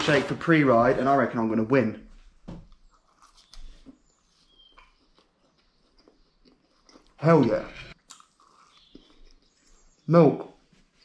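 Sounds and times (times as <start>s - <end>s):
soft chewing: 2.6s - 11.0s.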